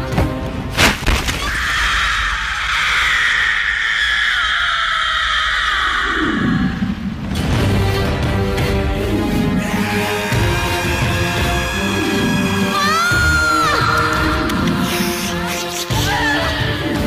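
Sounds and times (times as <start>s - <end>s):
film music: 6.1s - 17.0s.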